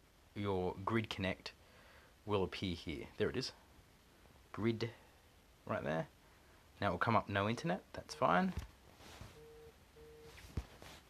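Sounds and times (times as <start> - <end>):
phone alert beeps: 9.3 - 10.4.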